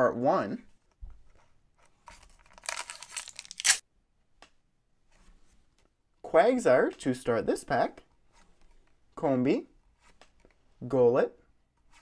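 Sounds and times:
foil wrapper crinkling: 2.5 - 3.8
foil wrapper ripping: 2.6 - 3.8.

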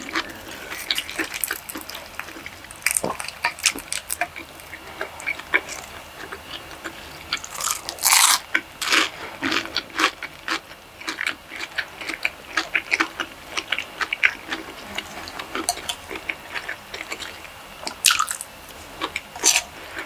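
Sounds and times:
food crunches: 0.0 - 14.7, 15.3 - 20.0
wet chewing and mouth smacks: 0.0 - 20.0.

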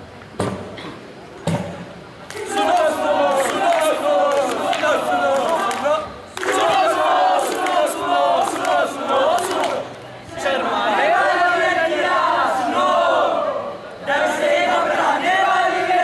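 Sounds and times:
male voices chanting in unison: 2.3 - 16.0.

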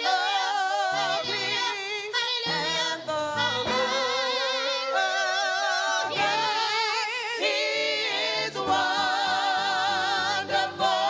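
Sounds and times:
women singing gospel with vibrato: 0.0 - 11.0.

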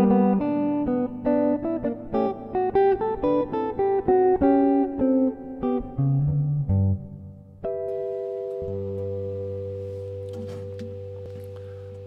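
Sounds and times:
electric guitar fingerstyle: 0.0 - 12.0.

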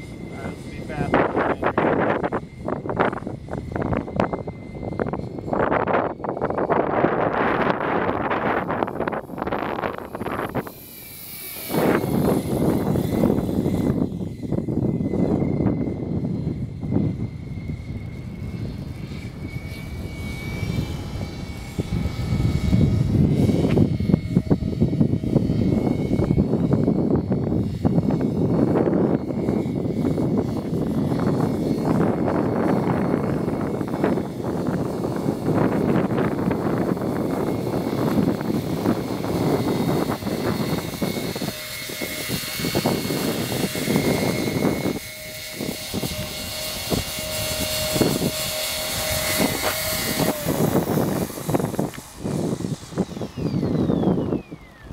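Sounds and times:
model aircraft rotors buzzing: 0.0 - 54.9
steady rotor tone: 0.0 - 54.9
steady rushing noise: 0.0 - 54.9.

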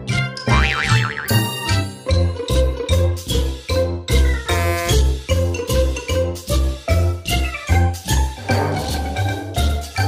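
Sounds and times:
cartoon boing: 0.5 - 1.5.

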